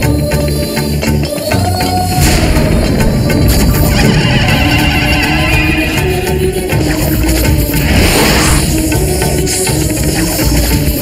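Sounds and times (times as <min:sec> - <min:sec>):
dramatic background score: 0:00.0 - 0:11.0.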